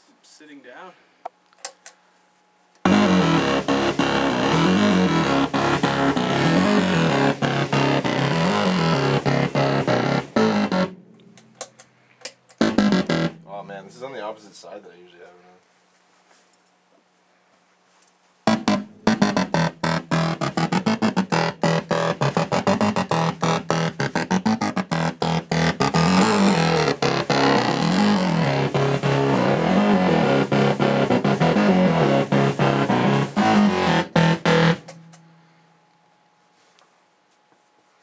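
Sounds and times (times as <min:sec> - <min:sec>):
loud analogue synthesizer: 0:02.8 - 0:14.3, 0:18.5 - 0:35.6.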